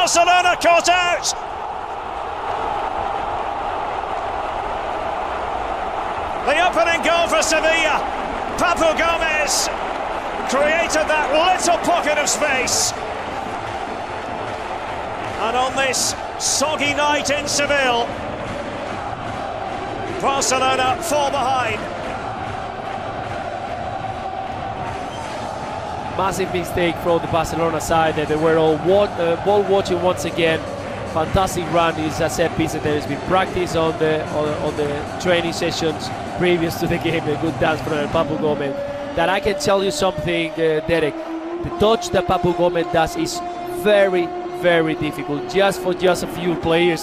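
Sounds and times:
stadium crowd cheering: 0.0 - 47.0
stadium crowd singing and chanting: 16.2 - 31.9.

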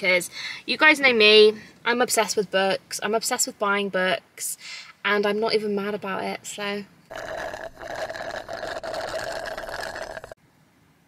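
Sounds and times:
slurping drink through a straw: 7.1 - 10.4.

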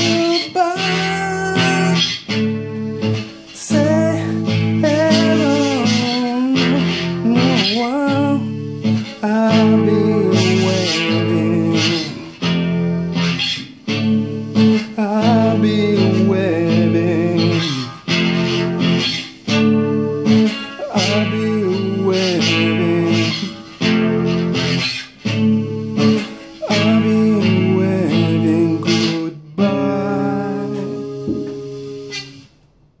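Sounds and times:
person singing: 0.0 - 12.9, 14.6 - 18.6, 20.3 - 23.7, 26.0 - 31.8
acoustic guitar chords: 0.0 - 32.8.

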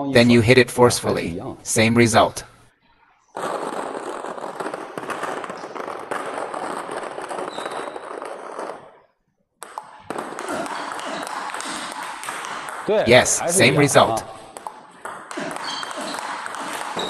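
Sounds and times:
ping-pong balls clicking: 3.6 - 9.0, 9.6 - 17.0.

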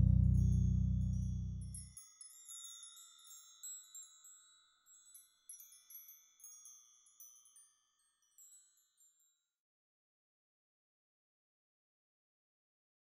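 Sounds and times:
deep chime note: 0.0 - 1.8
high chime notes: 0.0 - 1.8.

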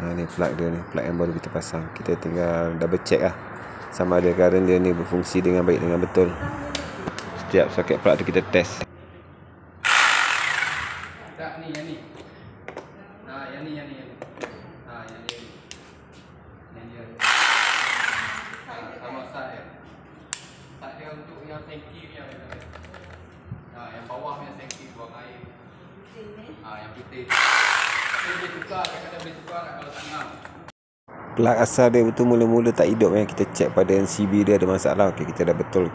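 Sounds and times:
electric hammer drill running: 9.8 - 11.3, 17.2 - 18.7, 27.3 - 28.7.

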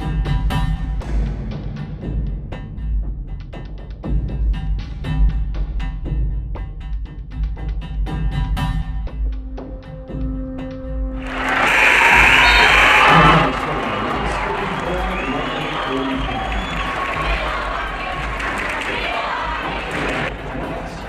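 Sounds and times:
crowd cheering and applause: 11.2 - 21.0.

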